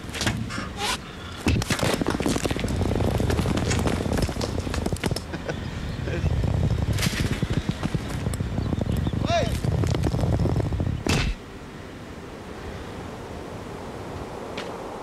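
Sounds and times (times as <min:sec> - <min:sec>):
heavy ball rolling over asphalt: 0:01.4 - 0:11.0.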